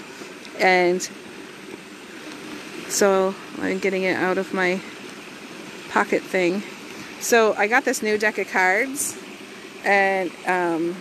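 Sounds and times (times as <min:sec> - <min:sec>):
outdoor background rush: 0:00.0 - 0:11.0.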